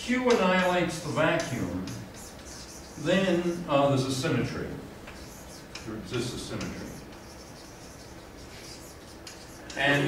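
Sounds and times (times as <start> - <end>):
chalk scratching on blackboard: 0.6 - 3.7, 5.1 - 10.0
man speaking: 5.8 - 7.1, 9.7 - 10.0.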